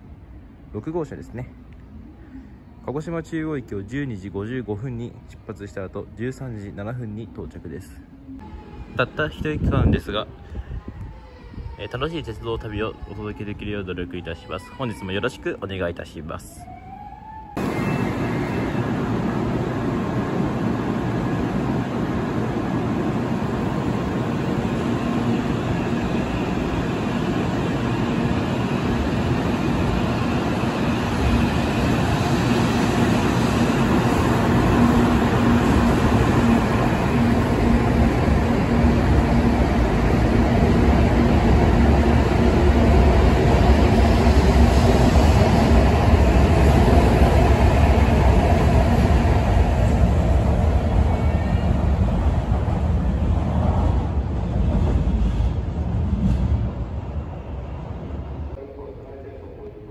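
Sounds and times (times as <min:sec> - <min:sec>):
train approaching: 0:00.0 - 0:59.9
train pulling out: 0:17.3 - 0:57.6.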